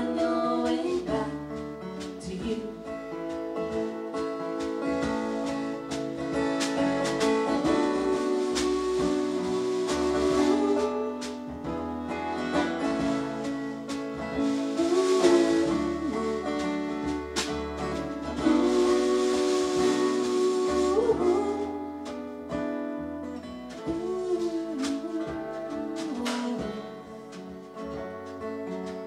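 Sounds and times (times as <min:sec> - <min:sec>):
strummed acoustic guitar: 0:00.0 - 0:29.0
hand-played snare drum: 0:02.0 - 0:22.2, 0:23.7 - 0:29.0.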